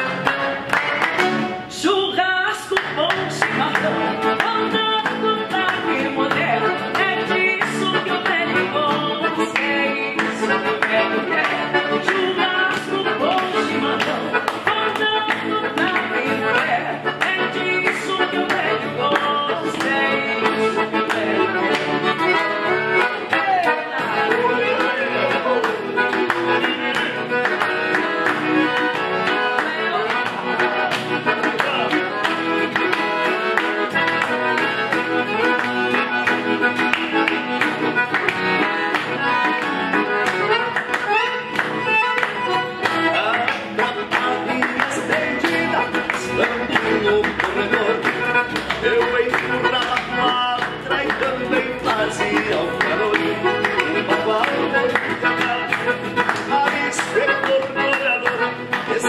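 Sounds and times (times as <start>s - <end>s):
hand clapping: 0.0s - 1.7s, 2.5s - 59.0s
acoustic guitar: 0.0s - 59.0s
piano accordion: 0.0s - 59.0s.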